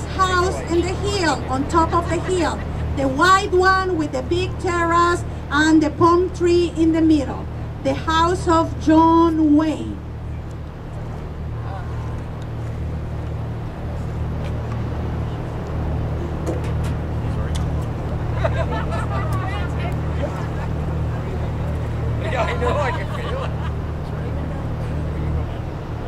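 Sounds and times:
voices talking: 0.0s - 10.6s, 17.2s - 25.9s
boat engine droning: 0.0s - 26.0s.

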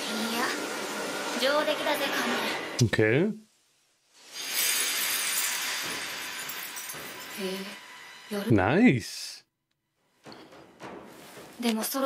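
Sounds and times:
glassy shattering crackle: 4.1s - 8.1s.

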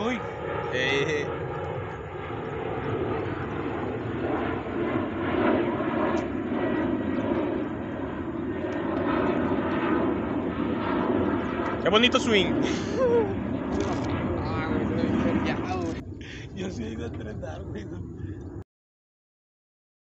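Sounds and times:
people talking: 0.0s - 1.3s, 11.8s - 18.3s
low engine drone: 0.0s - 18.6s.

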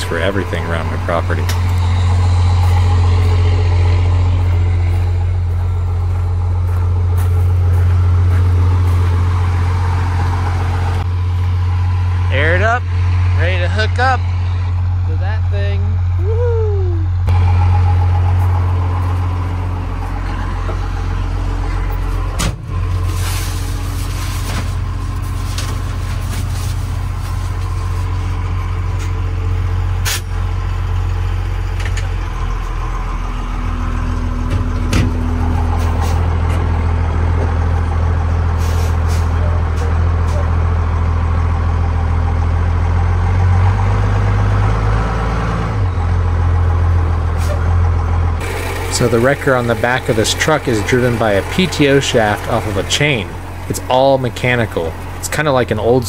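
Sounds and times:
diesel engine droning: 0.0s - 56.0s.

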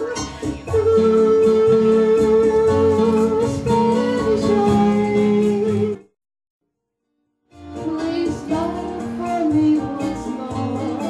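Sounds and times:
woman singing into microphone: 0.0s - 6.0s, 7.7s - 11.0s
electronic keyboard: 0.0s - 6.1s.

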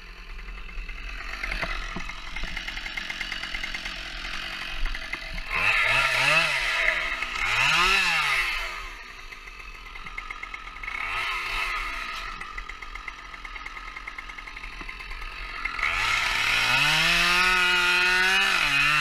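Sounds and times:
chainsaw revving: 0.0s - 19.0s.

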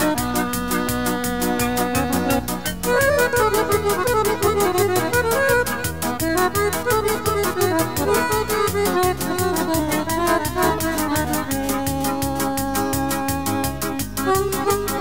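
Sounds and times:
instrumental band music: 0.0s - 15.0s.

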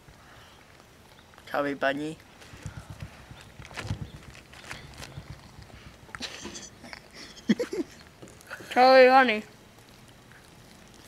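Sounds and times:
plastic bag crinkling: 1.2s - 11.0s.

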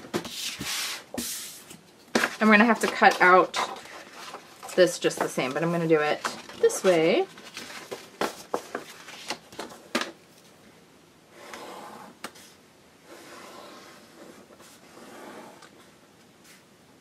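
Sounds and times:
paper handling: 1.7s - 9.8s
pencil scratching on paper: 11.4s - 12.5s, 13.1s - 15.6s.

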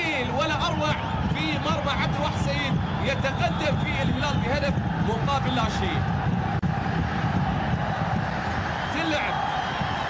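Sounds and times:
stadium crowd roar: 0.0s - 10.0s.

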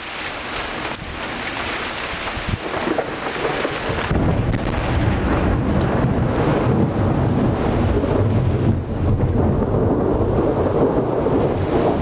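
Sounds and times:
steady rain: 0.0s - 12.0s
deep thunder rumble: 2.4s - 12.0s.

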